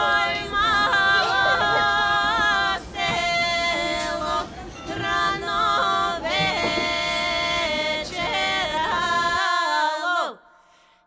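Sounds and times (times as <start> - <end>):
women singing a cappella folk song: 0.0 - 10.7.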